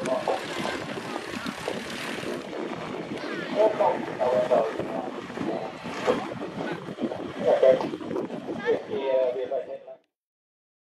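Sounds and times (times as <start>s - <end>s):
people's voices: 0.0s - 2.3s, 3.0s - 10.0s
light aircraft engine and propeller: 0.0s - 8.1s.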